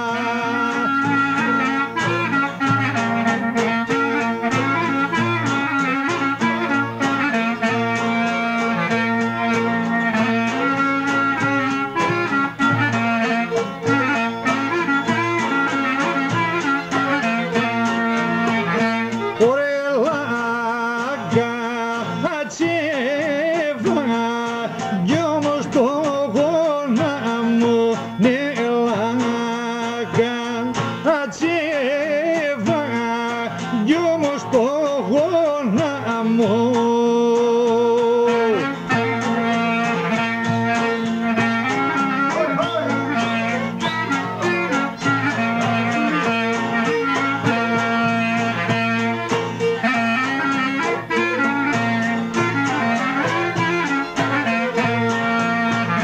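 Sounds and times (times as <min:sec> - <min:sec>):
clarinet melody: 0:00.0 - 0:56.0
folk instrumental accompaniment: 0:00.0 - 0:56.0
hand drum beat: 0:00.0 - 0:56.0
lute: 0:00.0 - 0:56.0
violin: 0:00.0 - 0:56.0.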